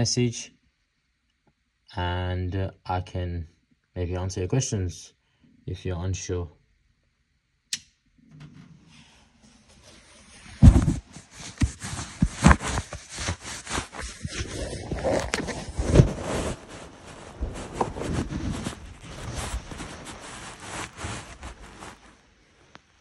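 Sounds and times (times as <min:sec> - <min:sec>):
phone rubbing against fabric: 0:08.9 - 0:22.4.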